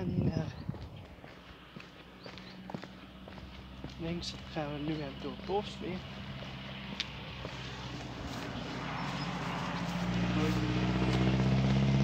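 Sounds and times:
vehicle engine approaching: 0:00.0 - 0:12.0.

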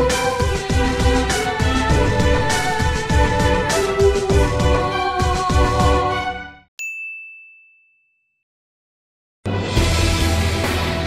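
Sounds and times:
high bell-like ding: 0:06.8 - 0:08.4.

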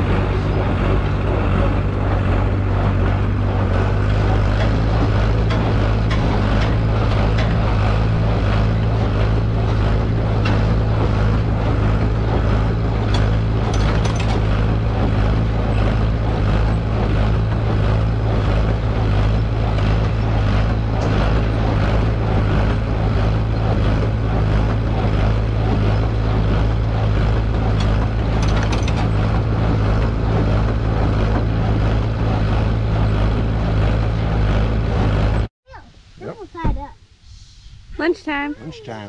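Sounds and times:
tractor engine humming: 0:00.0 - 0:36.7
baler mechanism clattering: 0:00.1 - 0:35.4.

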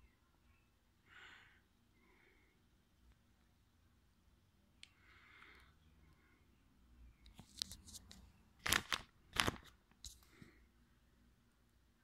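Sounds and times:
plastic crinkling and clicking: 0:07.3 - 0:10.2.

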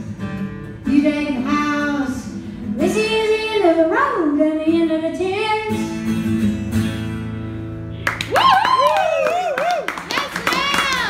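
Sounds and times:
audience clapping: 0:08.0 - 0:11.0
person whooping: 0:08.3 - 0:10.0.

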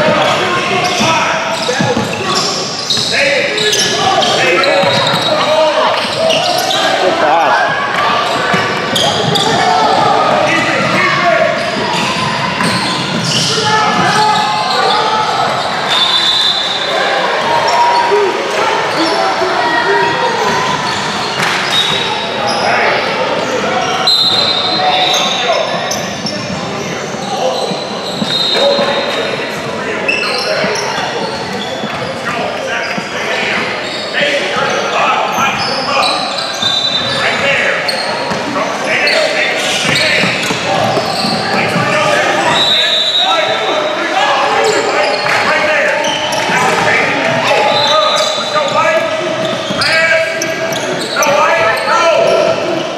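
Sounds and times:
indistinct chatter and calls: 0:00.0 - 0:52.9
sneaker squeaks: 0:00.0 - 0:52.9.

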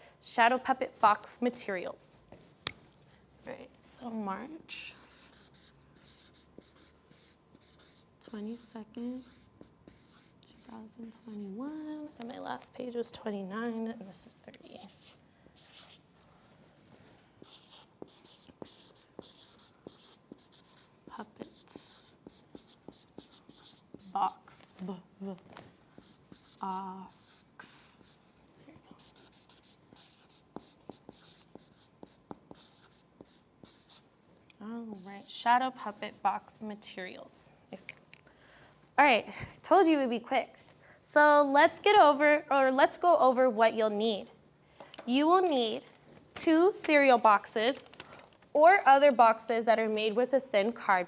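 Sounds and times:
marker scratching on paper: 0:04.7 - 0:12.0, 0:14.6 - 0:16.0, 0:17.4 - 0:24.7, 0:25.9 - 0:34.0, 0:35.0 - 0:35.4.

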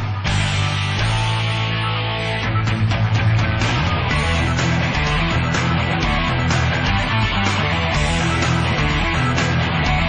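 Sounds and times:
rock music with guitar: 0:00.0 - 0:10.0.

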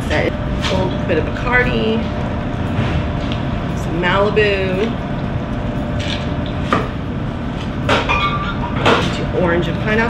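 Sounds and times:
steady background hum: 0:00.0 - 0:10.0
glassy clink: 0:08.0 - 0:08.8.

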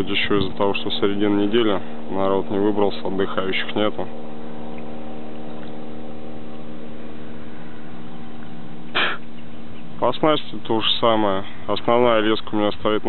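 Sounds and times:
steady mechanical hum: 0:00.0 - 0:13.0.

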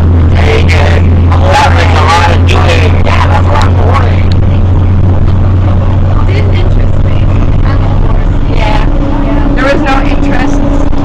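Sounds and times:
bus rumbling inside cabin: 0:00.0 - 0:11.0.

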